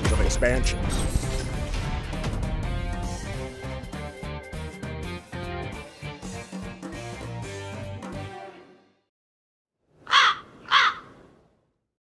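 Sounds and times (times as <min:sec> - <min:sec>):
crow cawing: 0:10.0 - 0:11.3.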